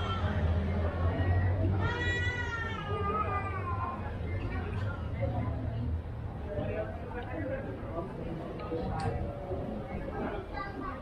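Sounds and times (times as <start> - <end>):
street hubbub: 0.0 - 11.0.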